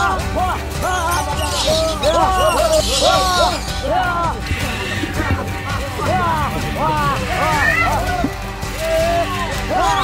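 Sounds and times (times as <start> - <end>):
voices shouting and whooping: 0.0 - 10.0
steady low rumble: 3.8 - 8.6.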